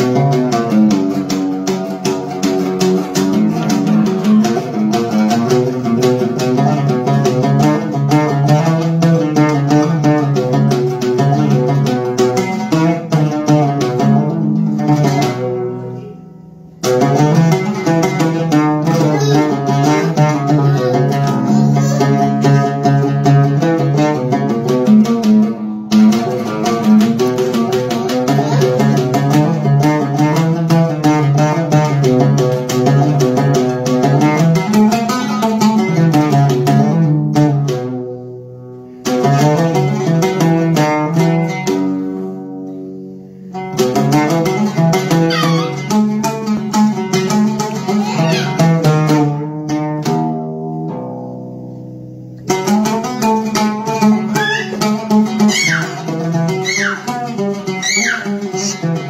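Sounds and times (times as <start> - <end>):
solo oud melody: 0.0 - 59.0.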